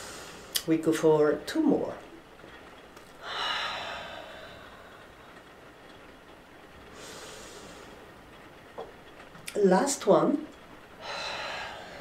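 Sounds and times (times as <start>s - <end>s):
woman exhaling forcefully: 3.2s - 5.2s, 11.0s - 12.0s
soft in-breath: 3.2s - 5.4s, 6.9s - 8.0s, 11.0s - 12.0s.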